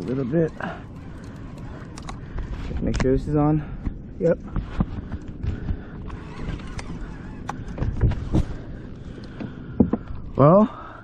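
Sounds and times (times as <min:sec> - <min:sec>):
clicks and knocks of gear: 0:00.4 - 0:03.2, 0:03.8 - 0:08.6.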